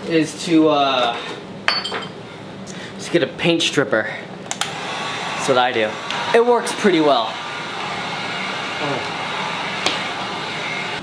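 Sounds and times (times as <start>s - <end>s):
heat gun blowing hot air: 4.6s - 11.0s.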